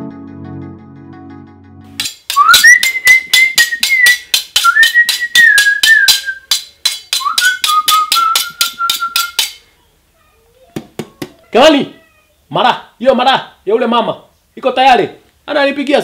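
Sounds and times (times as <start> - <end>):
man whistling a tune: 2.3 - 6.5, 7.2 - 9.5.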